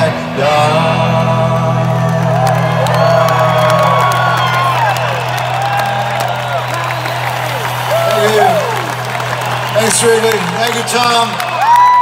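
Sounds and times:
crowd cheering and whooping: 0:01.8 - 0:12.0.

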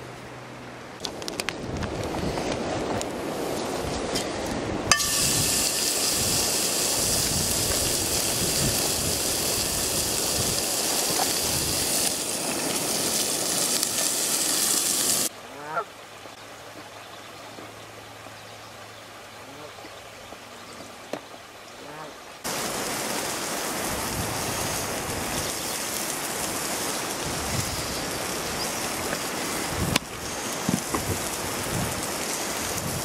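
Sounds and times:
patty sizzling in a frying pan: 0:04.9 - 0:15.3, 0:22.4 - 0:33.0
goose honk: 0:15.4 - 0:15.9, 0:21.8 - 0:22.2.

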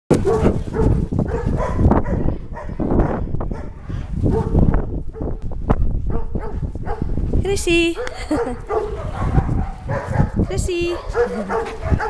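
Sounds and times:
dogs yelping: 0:00.1 - 0:04.5, 0:08.0 - 0:12.0.

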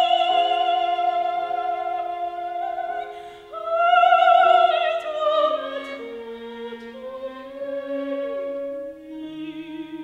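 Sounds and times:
chamber ensemble accompaniment: 0:00.0 - 0:10.0
operatic soprano singing: 0:00.0 - 0:10.0.

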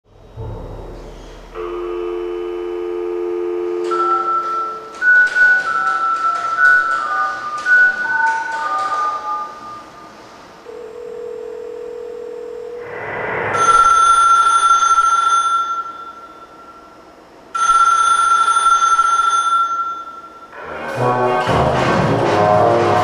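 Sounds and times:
steady low tone: 0:00.0 - 0:05.6
telephone ringing: 0:01.6 - 0:07.2, 0:10.7 - 0:12.8, 0:13.6 - 0:16.9, 0:17.6 - 0:20.6
rising swell of noise: 0:12.8 - 0:13.6.

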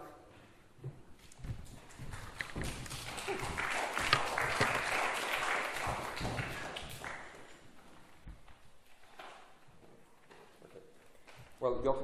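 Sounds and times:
audience applauding: 0:01.8 - 0:07.8.

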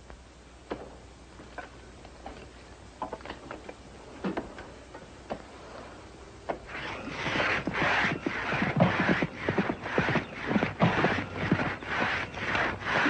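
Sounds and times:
crosscut saw rasping through wood: 0:06.7 - 0:13.0.

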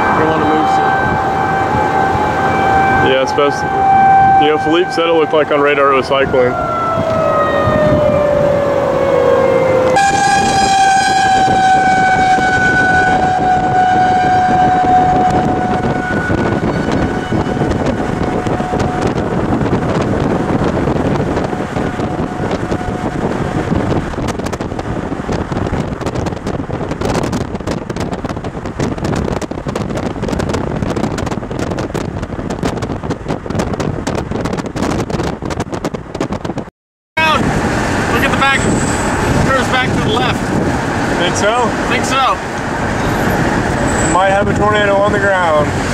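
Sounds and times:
warning siren wailing: 0:00.0 - 0:32.3, 0:37.2 - 0:45.9
wind and road noise: 0:00.0 - 0:45.9.

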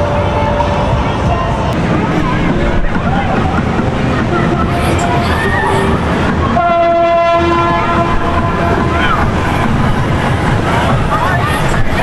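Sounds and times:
horn blast: 0:00.0 - 0:11.1
crowd chatter and shouts: 0:00.0 - 0:12.0.

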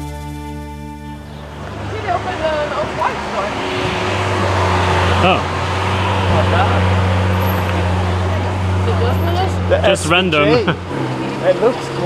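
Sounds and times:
car engine low rumble: 0:00.0 - 0:12.0
people talking: 0:01.8 - 0:05.5, 0:06.2 - 0:07.0, 0:07.6 - 0:12.0.

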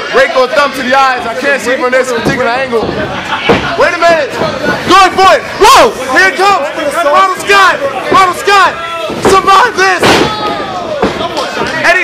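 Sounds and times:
voices: 0:00.0 - 0:12.0.

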